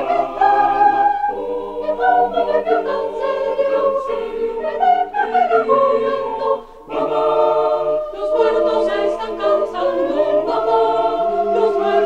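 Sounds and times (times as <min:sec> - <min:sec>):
choir singing sustained chords: 0:00.0 - 0:12.0.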